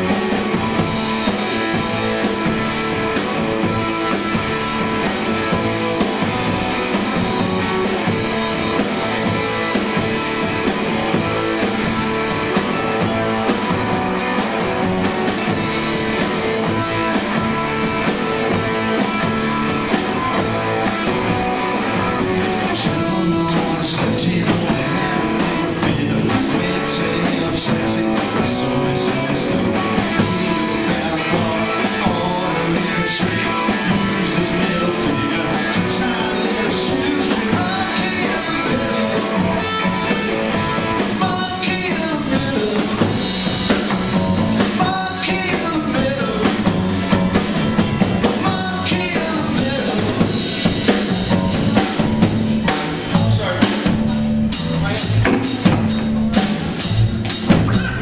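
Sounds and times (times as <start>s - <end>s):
drums striking steady beat: 0.0s - 58.0s
rock band playing: 0.0s - 58.0s.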